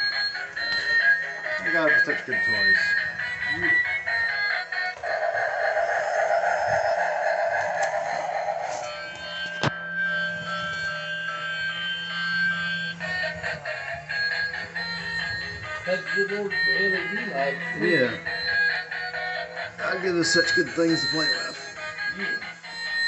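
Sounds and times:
toy motor hum: 0.0s - 23.0s
rushing noise: 5.0s - 9.2s
electronic tone tune: 5.0s - 23.0s.

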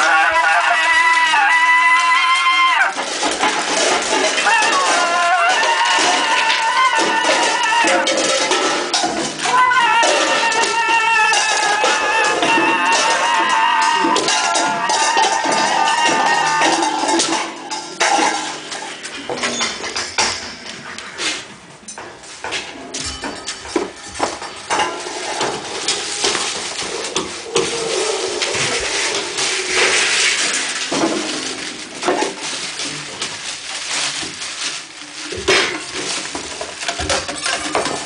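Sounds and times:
knocks and clinks of struck objects: 3.0s - 33.7s.

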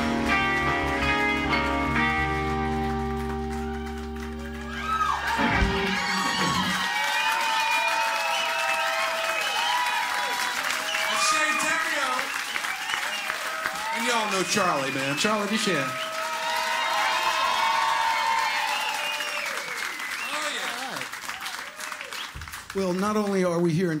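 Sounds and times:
rock band playing: 0.0s - 7.0s
audience cheering: 0.0s - 23.2s
audience applause: 0.0s - 23.8s.

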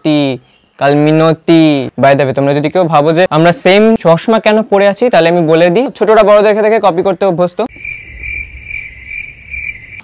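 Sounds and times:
man talking: 0.0s - 7.7s
cricket chirping: 7.7s - 10.0s.

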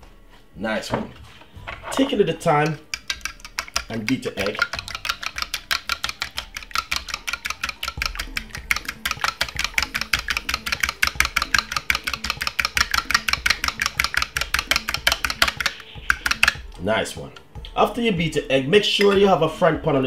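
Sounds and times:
fork clicking against bowl: 2.6s - 16.6s.

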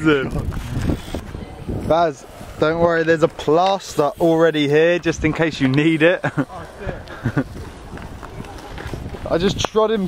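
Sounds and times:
camera handling noise: 0.3s - 1.4s
person laughing: 6.2s - 7.6s
footsteps on concrete: 6.6s - 10.0s.

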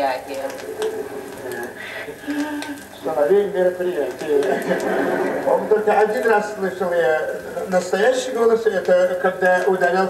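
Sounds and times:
vinyl record crackle: 0.0s - 10.0s.

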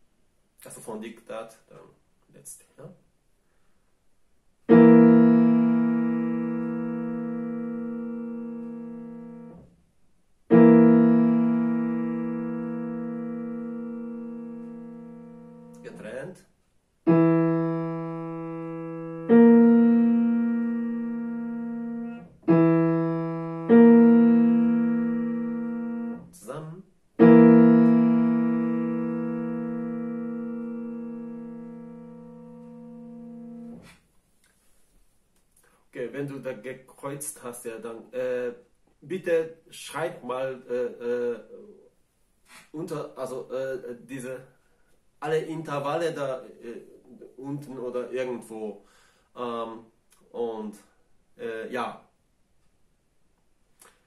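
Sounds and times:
digital piano chords: 4.6s - 9.7s, 10.5s - 16.4s, 17.1s - 34.0s.

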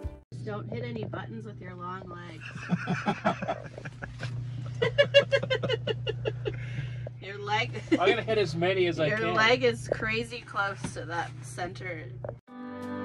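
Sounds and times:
people talking: 0.3s - 12.3s
steady low hum: 0.3s - 12.4s
burst of laughter: 2.4s - 6.8s.

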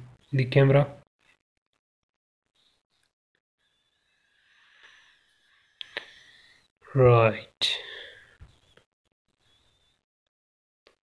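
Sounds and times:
faint breath: 4.4s - 6.7s, 7.7s - 8.6s.

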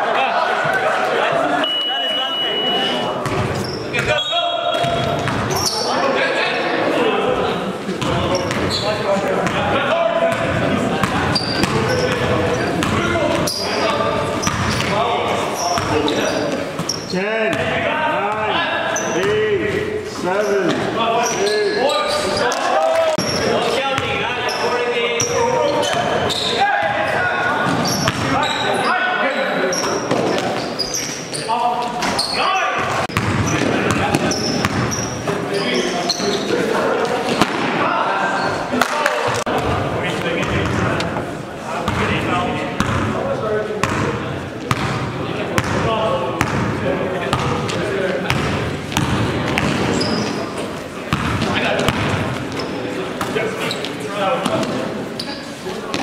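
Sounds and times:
basketball bouncing on gym floor: 4.8s - 5.5s, 27.6s - 28.3s, 33.1s - 35.0s, 44.7s - 45.0s, 48.3s - 50.0s, 51.1s - 52.3s
players shouting: 20.4s - 30.1s.

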